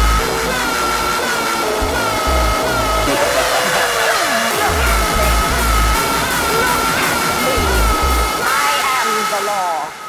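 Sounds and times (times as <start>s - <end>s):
heavy distorted kick drums: 0.0s - 8.8s
falling pitch sweep: 0.0s - 9.0s
high synth riff: 0.0s - 10.0s.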